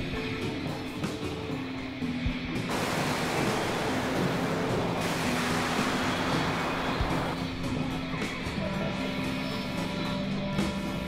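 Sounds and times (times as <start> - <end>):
low synthesizer drone: 2.7 - 10.5.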